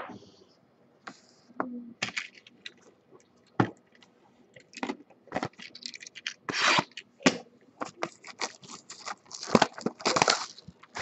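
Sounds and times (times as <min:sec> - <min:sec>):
card packaging crinkling: 0:07.8 - 0:11.0.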